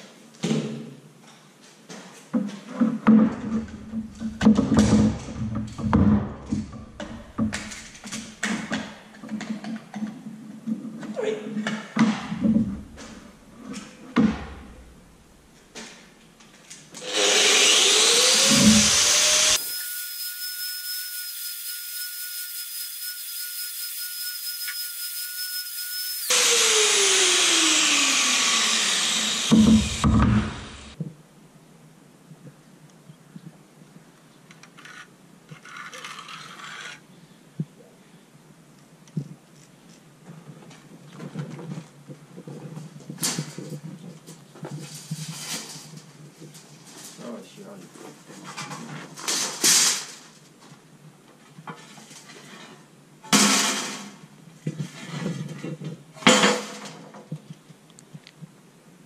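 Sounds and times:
electric drill whining: 0:17.0 - 0:31.0.

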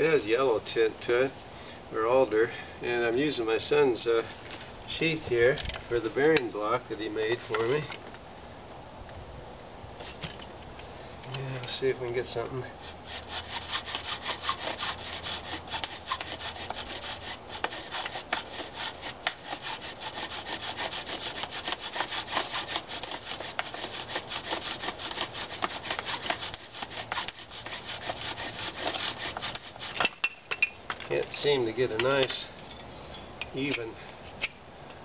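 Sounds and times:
bow drill spindle rasping: 0:12.8 - 0:30.2.

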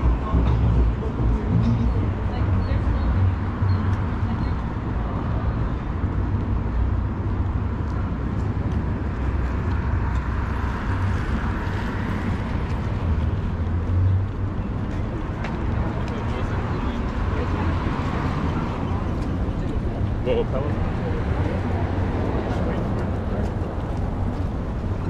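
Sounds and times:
low rumble of cars: 0:00.0 - 0:25.0.

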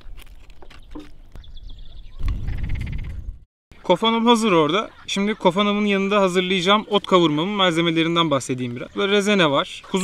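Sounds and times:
frogs croaking: 0:03.7 - 0:10.0.

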